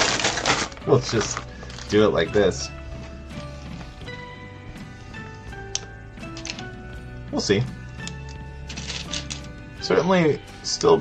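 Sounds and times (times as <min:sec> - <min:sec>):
plastic bricks clicking and clattering: 0:00.0 - 0:01.9, 0:08.0 - 0:09.4
background music: 0:00.0 - 0:11.0.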